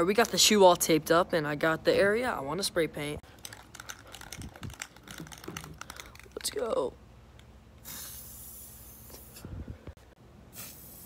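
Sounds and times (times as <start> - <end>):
spray paint can clicking and crinkling: 3.3 - 7.5.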